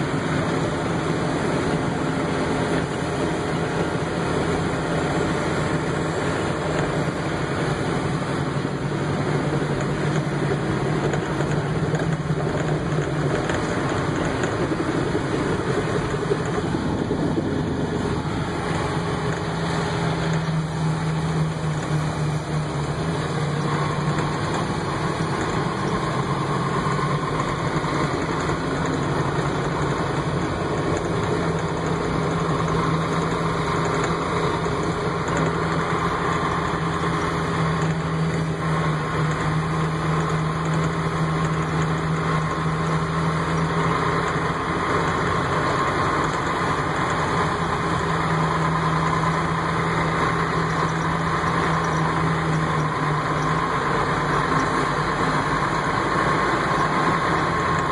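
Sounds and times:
tractor diesel engine running: 0:00.0 - 0:57.9.

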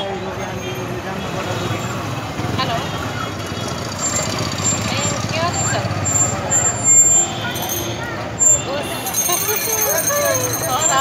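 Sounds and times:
motor scooters and motorcycles: 0:00.0 - 0:11.0
voices of passers-by: 0:00.0 - 0:11.0.

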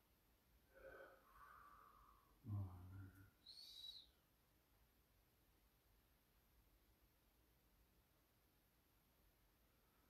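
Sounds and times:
high whistle-like tone: 0:03.4 - 0:04.2.

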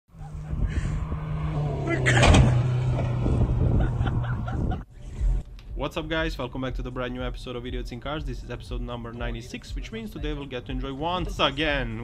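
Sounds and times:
car engine running: 0:00.1 - 0:05.4.

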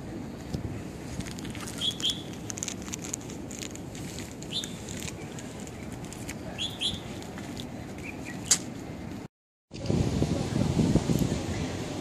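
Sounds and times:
birds chirping: 0:01.6 - 0:02.5, 0:04.4 - 0:08.6.

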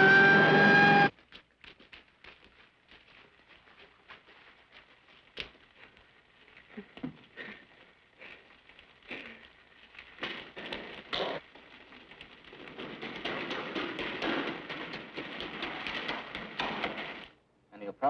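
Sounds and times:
splashes and steps in shallow water: 0:01.1 - 0:11.8.

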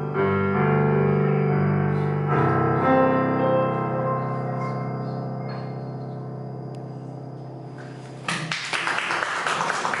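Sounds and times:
electric keyboard chord: 0:00.0 - 0:07.8
audience applause: 0:08.3 - 0:10.0.

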